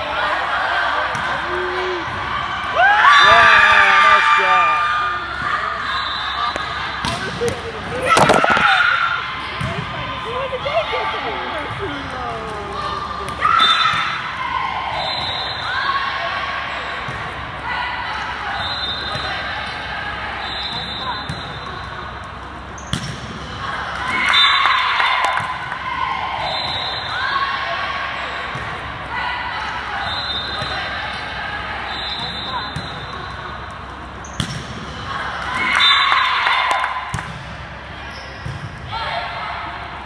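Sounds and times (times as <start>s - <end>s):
echoing indistinct voices: 6.4s - 13.5s
volleyball struck sharply: 8.0s - 9.0s.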